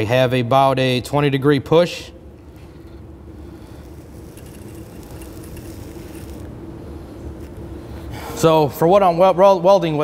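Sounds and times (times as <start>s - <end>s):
low machine hum: 0.0s - 10.0s.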